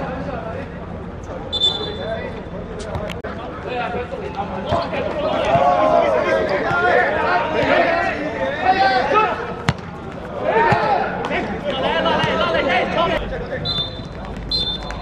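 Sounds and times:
referee's whistle blasts: 1.5 - 2.1, 13.6 - 15.0
players shouting: 4.2 - 15.0
ball kick: 9.6 - 11.0.

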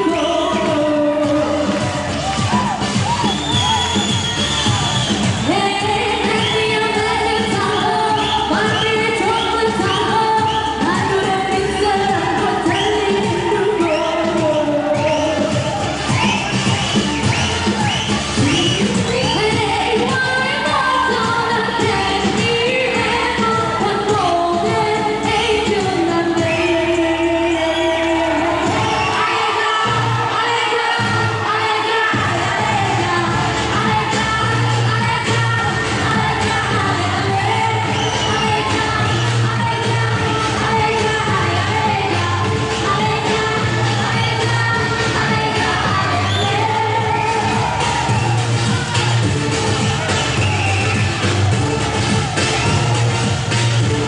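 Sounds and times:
live pop music with singer: 0.0 - 54.0.

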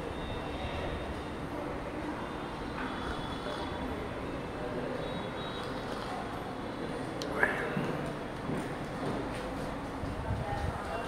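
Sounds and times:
distant road traffic: 0.0 - 10.2.

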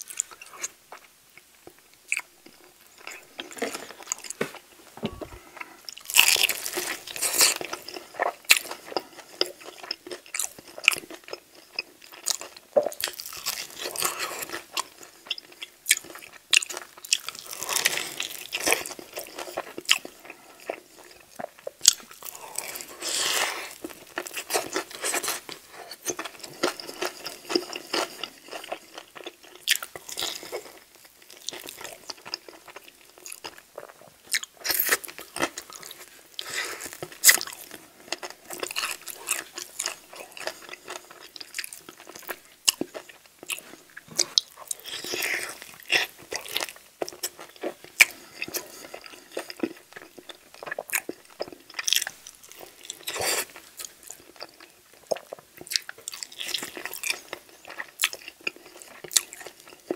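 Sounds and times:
biting and chewing chicken wings: 2.1 - 59.9.

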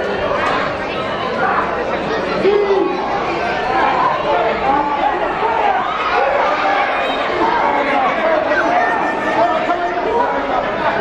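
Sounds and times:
crowd talking and shouting: 0.0 - 11.0.

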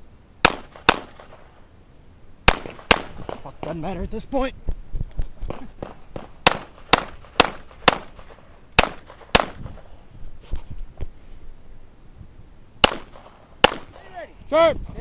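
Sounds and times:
pistol shots: 0.4 - 1.5, 2.4 - 3.8, 5.8 - 9.8, 12.8 - 14.1.

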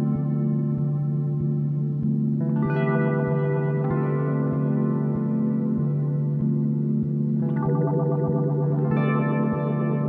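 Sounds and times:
electric guitar with echo effects: 0.0 - 10.0.

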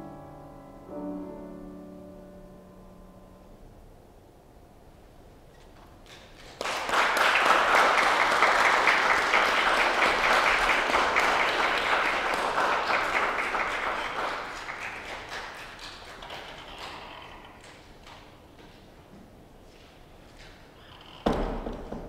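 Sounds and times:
audience applauding: 6.1 - 18.2.

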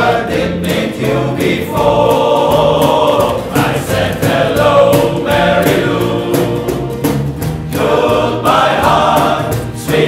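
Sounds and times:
male voice choir singing: 0.0 - 10.0.

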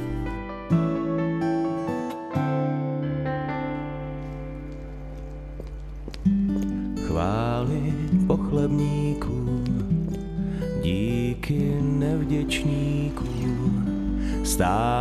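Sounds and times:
slow music with acoustic guitar: 0.0 - 15.0.

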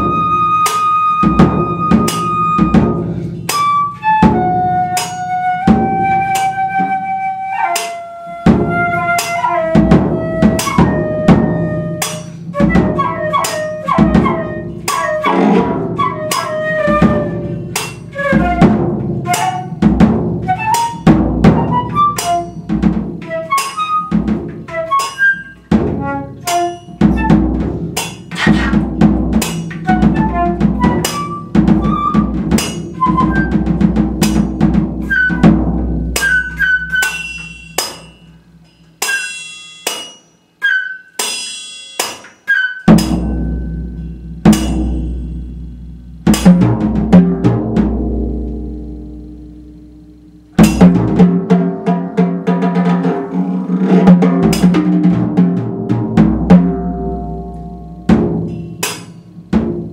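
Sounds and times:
darting flute notes: 0.0 - 27.7, 28.3 - 33.9, 35.0 - 38.2, 40.6 - 41.4, 42.4 - 44.0
drums and cymbals: 0.0 - 59.9
ringing metallic hits: 17.4 - 18.2, 26.4 - 30.1, 36.1 - 40.6, 41.2 - 46.6, 56.4 - 59.5.

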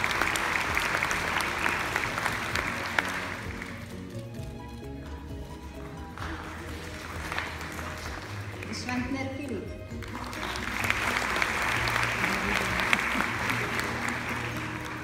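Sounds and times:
audience applauding: 0.0 - 4.5, 5.7 - 9.2, 9.9 - 15.0
instrumental music: 0.0 - 15.0.

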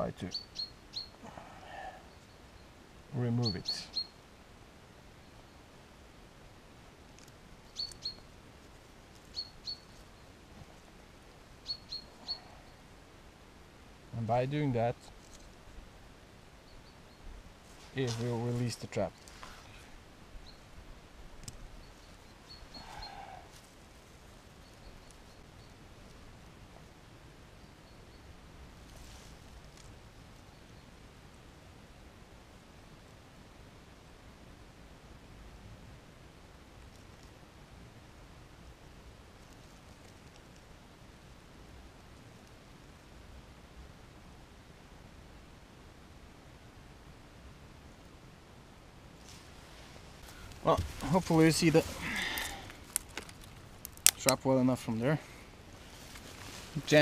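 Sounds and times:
songbird chirping: 0.0 - 4.3, 7.2 - 8.4, 9.1 - 10.9, 11.5 - 13.0, 16.5 - 19.5, 21.4 - 26.3
faint steady hiss: 0.0 - 57.0
wooden sticks handling noise: 17.7 - 19.7, 50.2 - 54.4.

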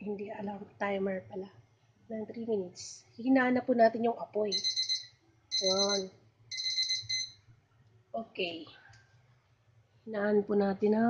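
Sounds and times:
electronic timer alarm beeping: 4.5 - 7.4.

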